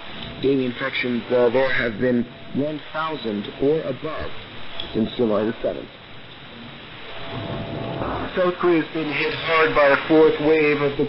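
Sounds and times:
radio static hiss and crackle: 0.0 - 11.0.

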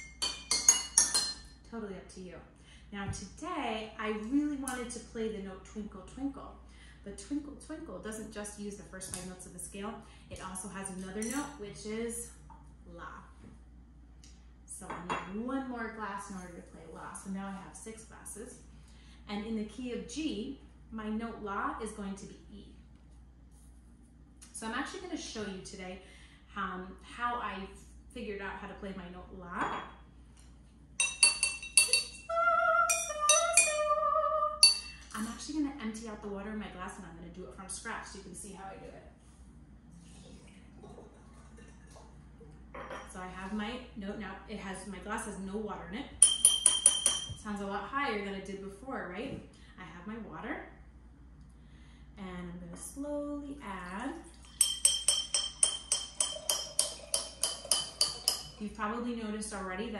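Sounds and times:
chopstick tapping water-tuned glasses: 31.0 - 32.3, 32.9 - 33.8, 34.6 - 35.0, 46.2 - 47.4, 54.4 - 58.6
water pouring into jar: 56.2 - 58.6.

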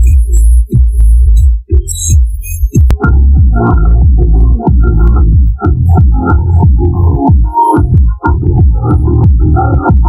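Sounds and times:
bass-heavy electronic music on subwoofer: 0.0 - 10.0.

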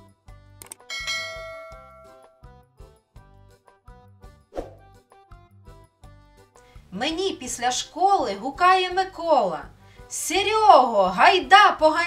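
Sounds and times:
light background music with beat: 0.0 - 7.4
bright bell ding: 0.9 - 2.4.

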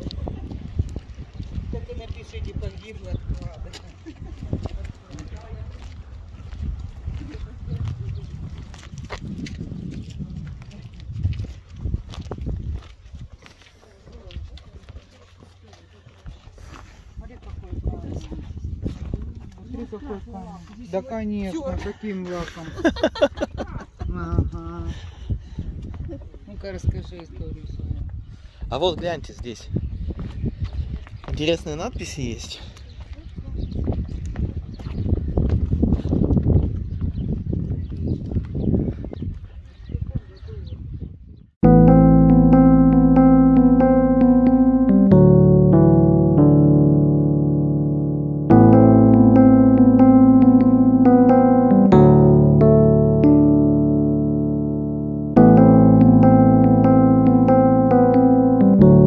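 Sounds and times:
footsteps on pavement: 0.4 - 19.7.

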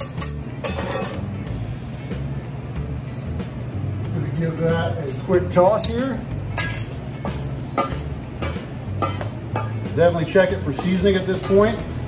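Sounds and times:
metal spoon scraping steel bowl: 0.0 - 1.2.

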